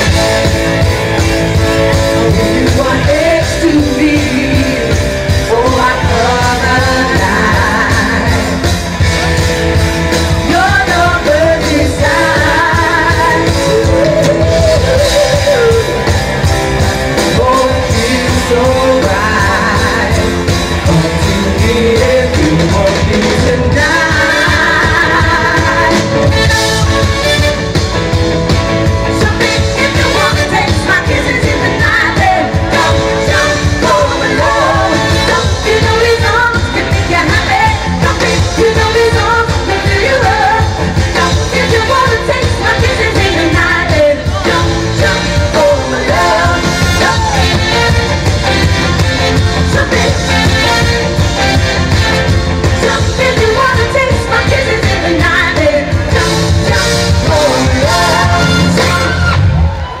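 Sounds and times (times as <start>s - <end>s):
pop backing music with beat: 0.0s - 60.0s
female vocal group singing: 2.2s - 8.7s, 10.5s - 16.0s, 21.6s - 26.9s, 29.2s - 47.6s, 52.8s - 59.2s.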